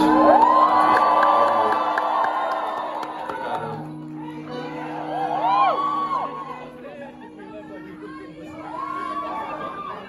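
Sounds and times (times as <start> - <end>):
whoops and screams: 0.0 - 6.8, 8.5 - 10.0
concert crowd cheering: 0.0 - 10.0.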